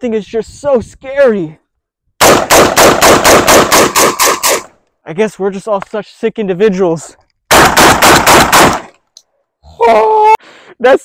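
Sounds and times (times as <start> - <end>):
rifle firing rapid shots: 2.2 - 4.7, 7.5 - 8.9.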